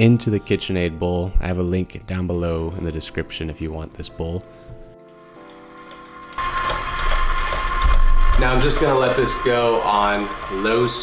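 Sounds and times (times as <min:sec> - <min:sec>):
stand mixer motor hum: 0:06.0 - 0:11.0.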